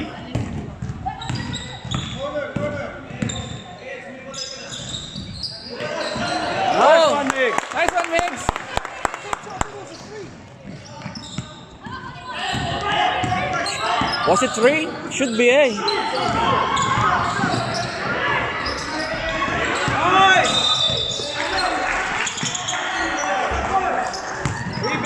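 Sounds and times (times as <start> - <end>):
sneakers squeaking: 0.0 - 6.8, 9.8 - 25.0
voices echoing in a hall: 0.0 - 25.0.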